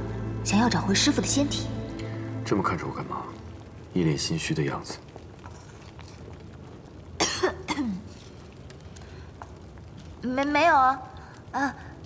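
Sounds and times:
woman coughing: 7.2s - 8.0s.

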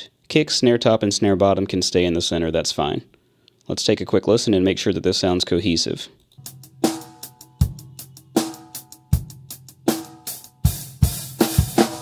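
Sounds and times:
kick and snare drum beat: 6.4s - 12.0s.

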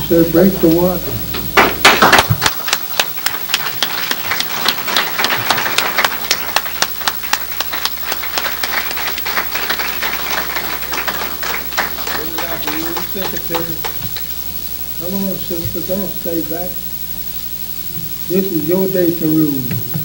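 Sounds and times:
audience clapping: 1.3s - 14.4s.

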